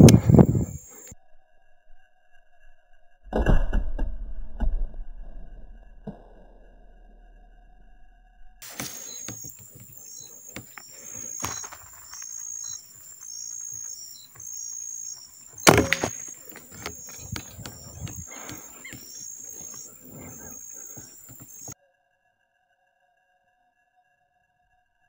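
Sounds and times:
insect chirping: 0:00.0 - 0:03.2, 0:06.7 - 0:25.0.

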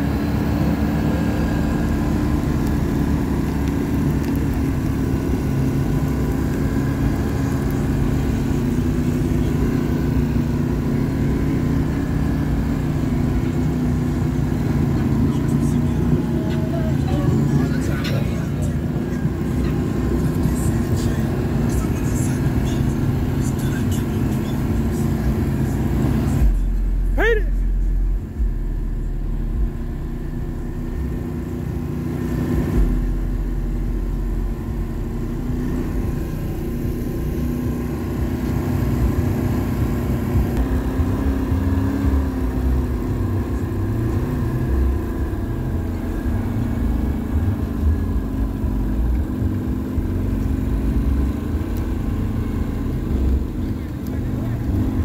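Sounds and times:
atv engine running: 0:00.0 - 0:55.0.

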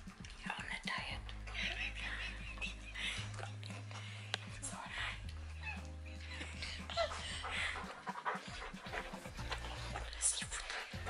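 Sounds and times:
background music: 0:00.0 - 0:11.0
dog licking and chewing: 0:06.6 - 0:11.0.

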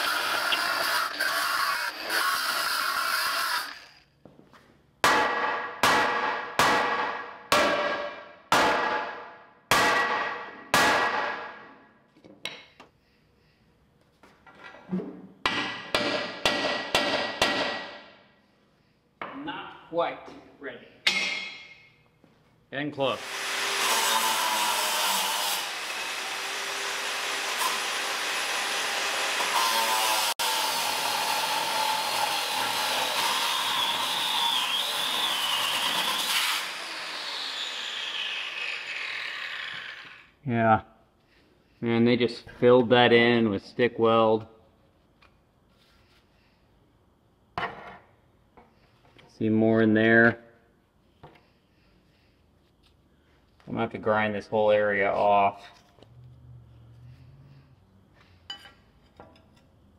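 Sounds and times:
angle grinder cutting: 0:00.0 - 0:04.0, 0:23.2 - 0:40.3.

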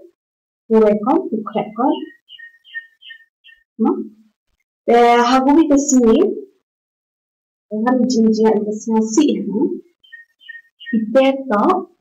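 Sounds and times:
person speaking: 0:00.7 - 0:02.2
bird chirping: 0:01.3 - 0:04.2, 0:09.8 - 0:11.3.

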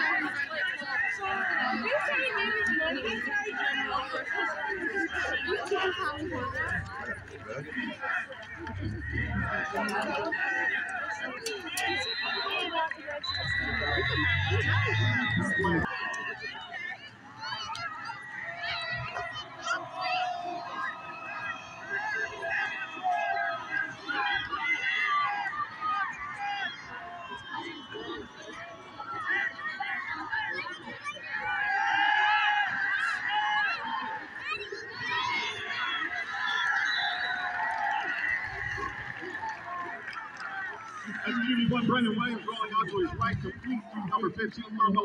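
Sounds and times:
crowd shouting and cheering: 0:00.0 - 0:45.0.

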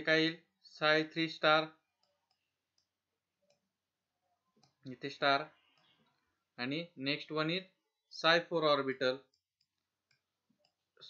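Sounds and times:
man speaking: 0:00.0 - 0:01.8, 0:04.8 - 0:05.6, 0:06.6 - 0:09.3.

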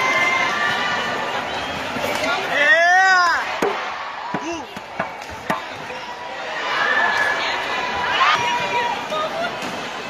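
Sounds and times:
arena crowd voices: 0:00.0 - 0:10.0.

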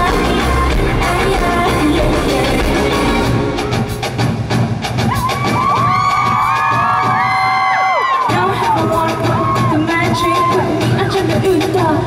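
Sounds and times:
crowd screaming and cheering: 0:00.0 - 0:11.6
live pop band music: 0:00.0 - 0:12.0.

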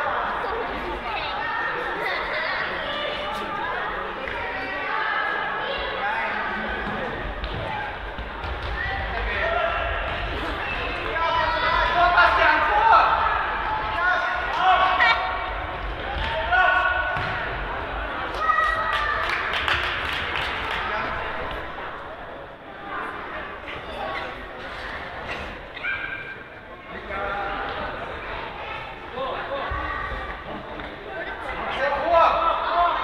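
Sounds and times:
many voices talking and calling: 0:00.0 - 0:33.0
ball kicked and bouncing: 0:17.1 - 0:17.6.

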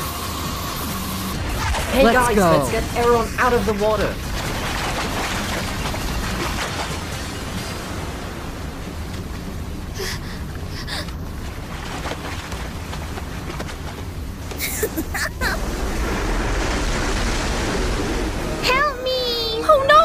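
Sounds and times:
rushing roar of water: 0:01.3 - 0:20.0.

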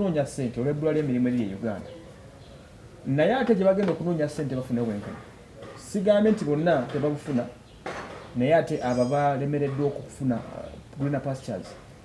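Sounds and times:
man speaking: 0:00.0 - 0:02.1, 0:03.0 - 0:07.6, 0:08.4 - 0:11.9
dishes clinking: 0:05.0 - 0:10.0.

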